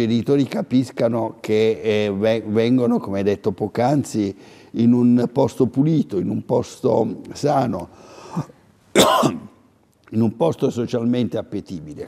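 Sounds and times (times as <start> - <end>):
loud cough: 9.0 - 9.6.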